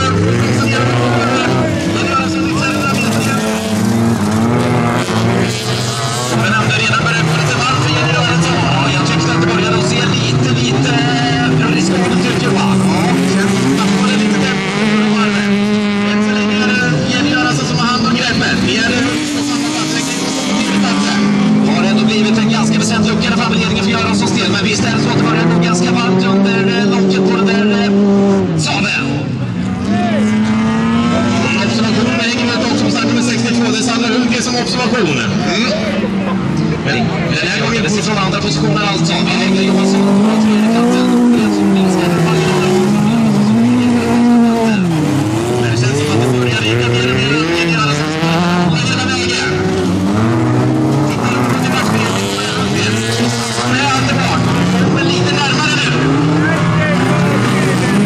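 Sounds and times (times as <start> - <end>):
race car engines revving: 0.0 - 58.0.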